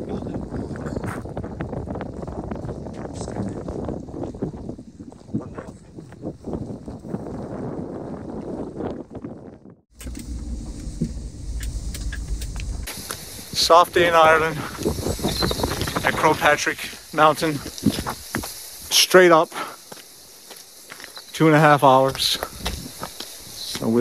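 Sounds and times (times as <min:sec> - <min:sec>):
gusty wind on microphone: 0:00.0 - 0:19.3, 0:22.0 - 0:24.0.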